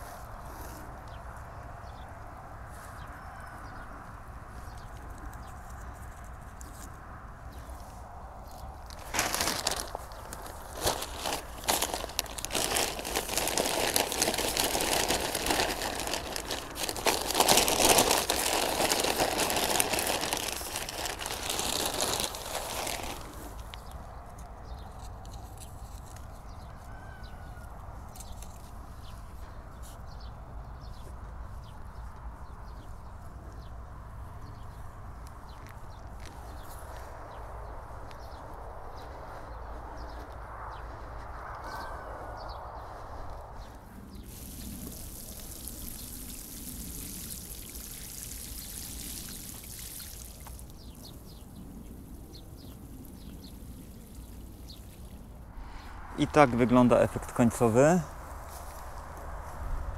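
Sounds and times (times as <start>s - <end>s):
plastic sack crinkling: 8.9s - 23.6s
soil pouring: 8.9s - 23.6s, 44.3s - 50.7s.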